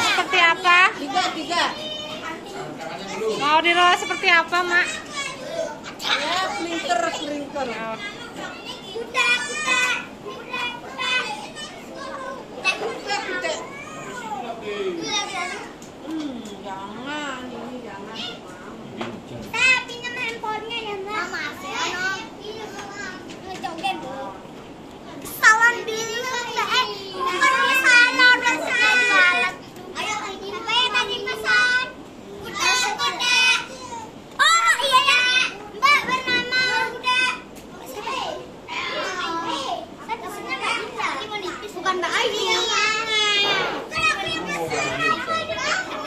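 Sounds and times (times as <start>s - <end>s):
young children talking and calling: 0.0s - 46.0s.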